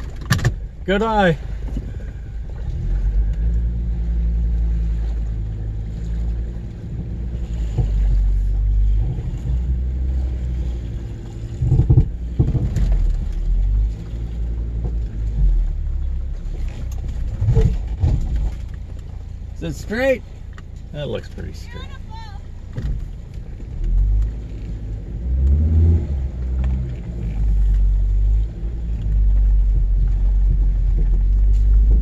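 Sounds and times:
car engine low rumble: 0.0s - 32.0s.

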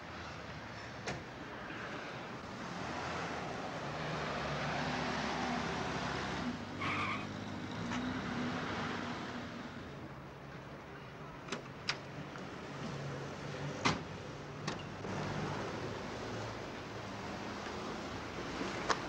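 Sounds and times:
tyre squeal: 6.8s - 8.0s.

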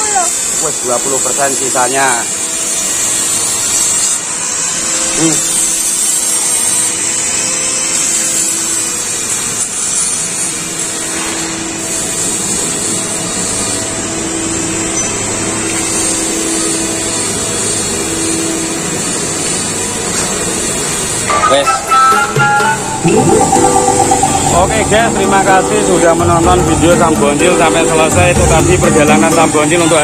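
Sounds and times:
music: 20.5s - 30.0s.

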